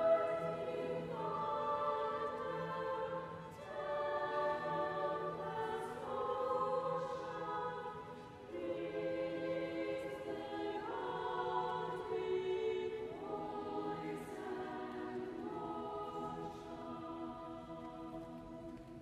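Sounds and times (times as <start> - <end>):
choir singing sustained chords: 0.0 - 19.0.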